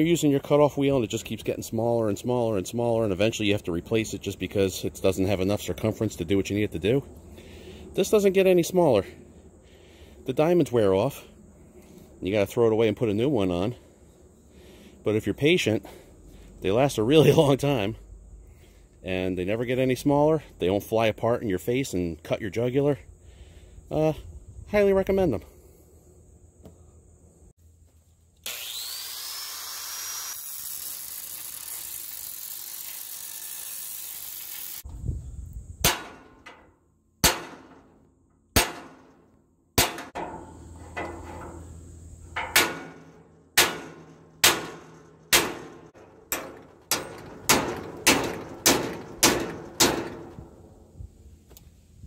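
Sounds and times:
angle grinder whining: 0:28.4 - 0:34.8
hammer striking steel: 0:35.8 - 0:36.6, 0:37.2 - 0:37.9, 0:38.5 - 0:39.2, 0:39.8 - 0:41.6, 0:42.4 - 0:50.7.

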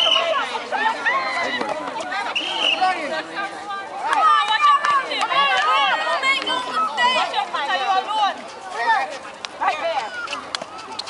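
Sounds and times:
women and girls talking and calling: 0:00.0 - 0:11.0.

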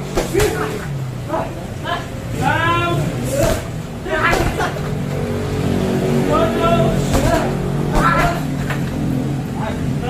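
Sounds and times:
punches hitting punching bags: 0:00.0 - 0:00.8, 0:03.3 - 0:04.8, 0:07.0 - 0:08.6.

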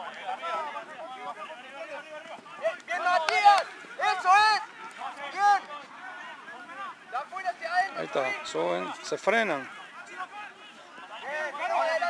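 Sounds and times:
men shouting calls: 0:00.0 - 0:12.0.

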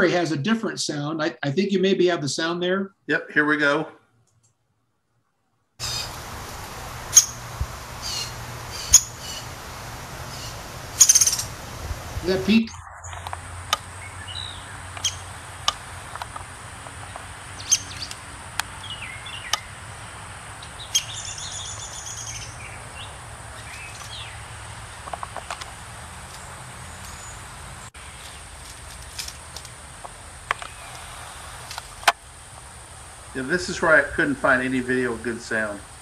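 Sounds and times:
outdoor background noise: 0:00.0 - 0:36.0
woodpecker calling in background: 0:05.8 - 0:06.2, 0:07.1 - 0:09.6, 0:10.2 - 0:11.6, 0:12.7 - 0:15.3, 0:17.0 - 0:18.2
woodpecker call notes: 0:05.8 - 0:32.3
birds chirping: 0:05.8 - 0:36.0.

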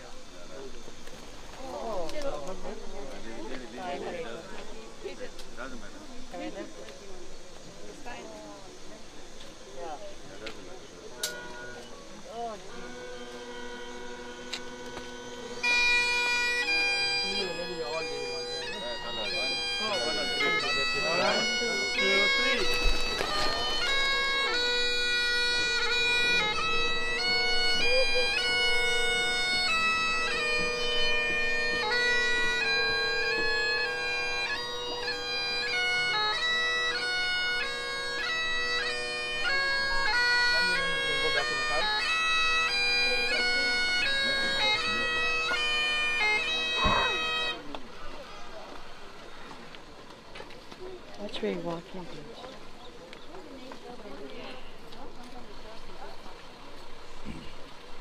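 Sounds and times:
bagpipes playing slow melody: 0:00.0 - 0:52.5.

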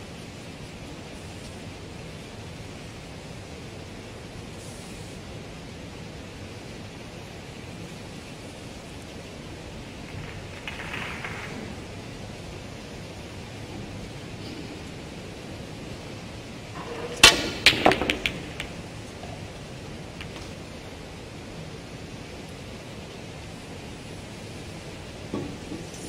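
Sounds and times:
room tone hiss: 0:00.0 - 0:26.0
snooker balls clicking: 0:09.8 - 0:21.2.

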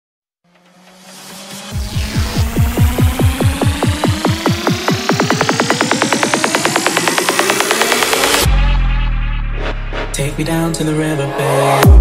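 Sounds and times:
repeated drum hit speeding up: 0:00.4 - 0:10.5
synth riser climbing in pitch: 0:00.5 - 0:12.0.

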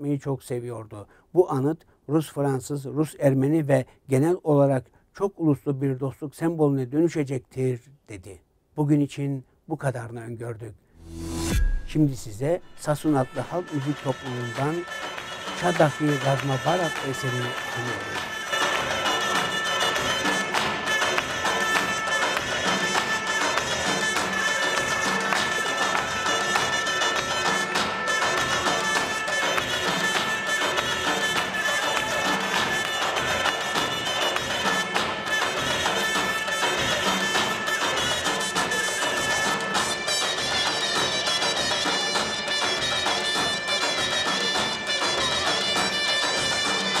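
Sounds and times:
reed wind instrument melody: 0:11.0 - 0:47.0.

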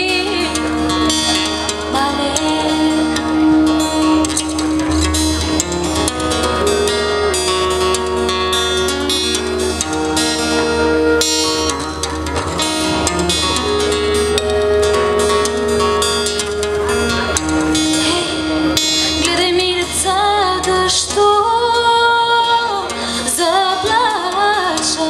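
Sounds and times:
strummed acoustic guitar: 0:00.0 - 0:25.0
flute playing held notes: 0:00.8 - 0:19.5.

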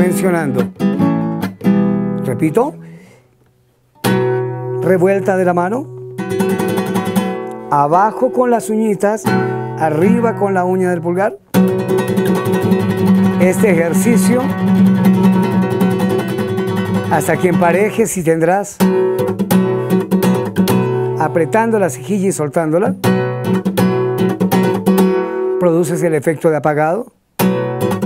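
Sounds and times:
classical guitar chord strummed: 0:00.0 - 0:03.0, 0:04.0 - 0:18.2, 0:18.8 - 0:22.2, 0:22.9 - 0:25.6, 0:27.4 - 0:28.0.

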